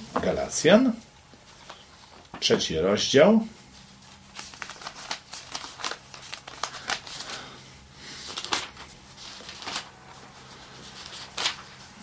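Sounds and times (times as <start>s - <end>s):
thin pages rustling: 3.8s - 7.5s, 8.2s - 12.0s.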